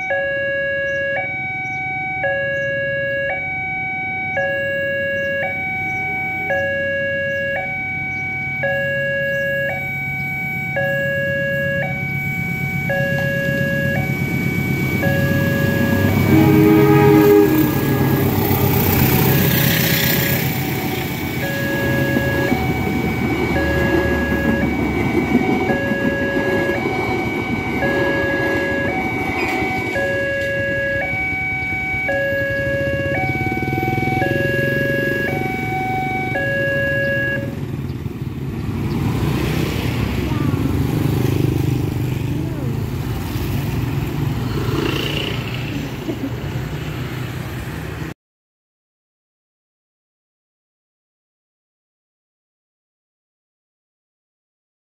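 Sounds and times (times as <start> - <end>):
two-tone crossing warning alarm: 0.0 - 37.9
motorcycles riding past: 11.0 - 48.1
train rumbling past: 11.8 - 36.3.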